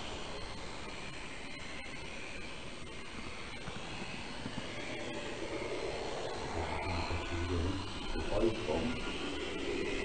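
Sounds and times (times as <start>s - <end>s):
low hum: 2.7s - 10.0s.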